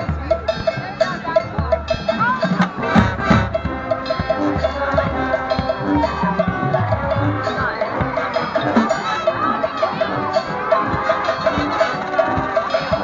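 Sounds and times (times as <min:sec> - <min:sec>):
marching band playing: 0:00.0 - 0:13.0
percussion beat: 0:00.0 - 0:13.0.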